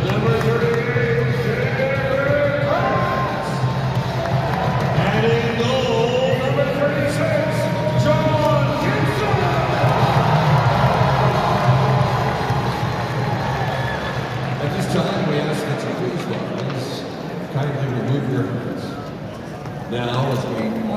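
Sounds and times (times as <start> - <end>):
music over sound system: 0.0 - 14.9
crowd cheering and shouting: 0.0 - 15.9.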